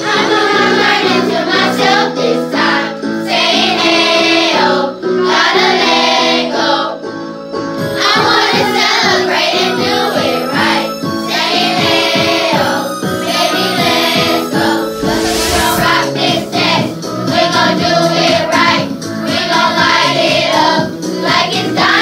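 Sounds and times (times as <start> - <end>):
children singing pop song: 0.0 - 7.0, 7.8 - 22.0.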